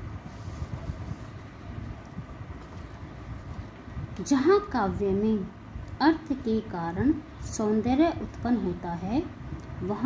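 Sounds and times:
low steady background rumble: 0.0s - 10.0s.

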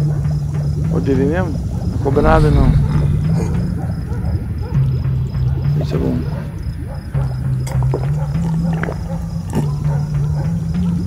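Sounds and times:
low rumbling drone: 1.6s - 7.0s.

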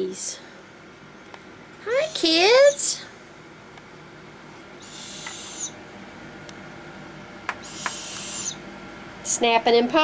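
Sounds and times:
owls giving raspy hissing calls: 4.8s - 5.8s, 7.6s - 8.6s
owl bill snaps: 7.5s - 8.6s.

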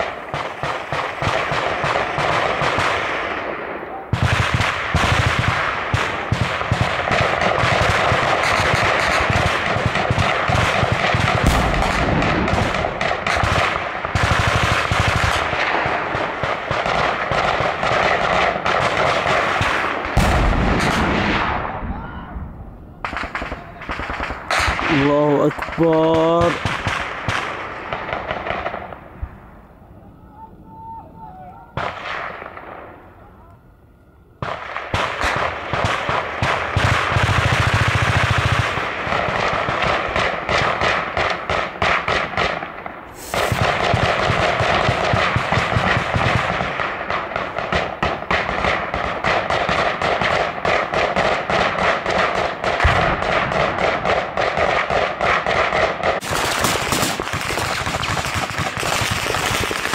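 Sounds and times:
automatic gunfire: 0.0s - 21.6s, 34.4s - 59.9s
man shouting: 21.8s - 22.4s, 30.2s - 31.8s.

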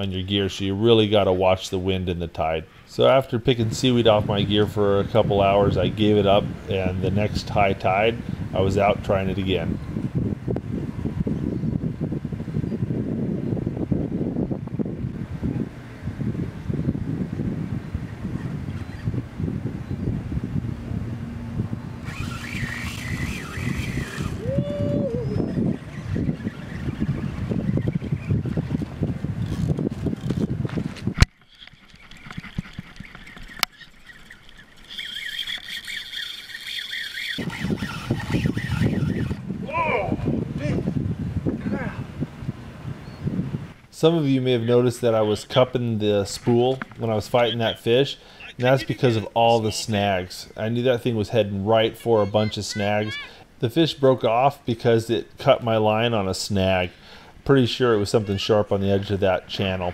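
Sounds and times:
wind rumbling on microphone: 3.2s - 36.3s, 37.2s - 53.6s
high steady whine: 20.3s - 27.7s.

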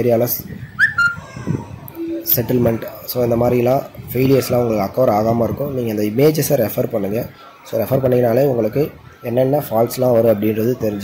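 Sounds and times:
whistle-like chirp: 0.8s - 1.2s.

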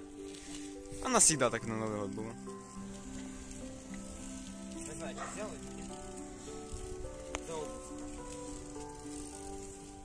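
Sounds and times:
music of long held notes: 0.0s - 10.0s
steady hiss: 0.0s - 10.0s.

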